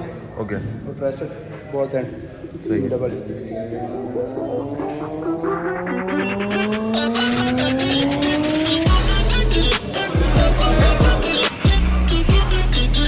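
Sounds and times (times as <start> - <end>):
rising synth sweep: 3.6 - 9.7.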